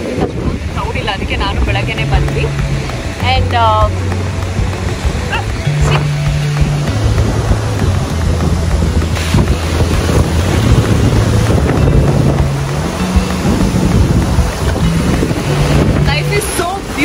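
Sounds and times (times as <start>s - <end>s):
surf breaking on beach: 0.0s - 17.0s
wind buffeting microphone: 0.0s - 17.0s.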